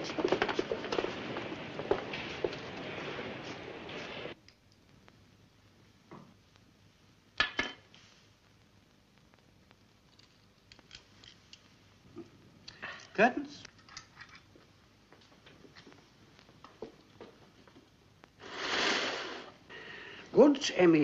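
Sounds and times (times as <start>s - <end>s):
hiss: 18.4s - 20.2s.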